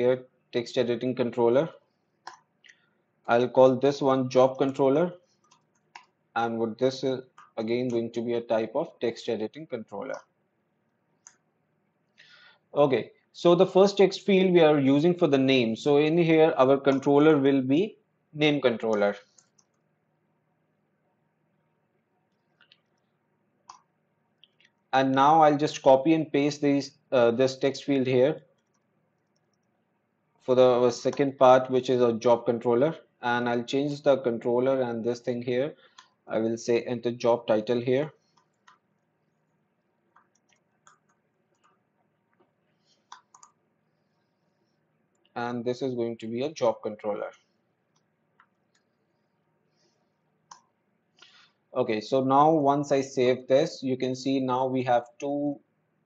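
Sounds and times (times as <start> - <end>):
person speaking: 0.0 - 2.5, 3.3 - 5.2, 6.0 - 10.4, 12.7 - 19.4, 24.9 - 28.4, 30.4 - 38.2, 45.3 - 47.4, 51.7 - 55.6.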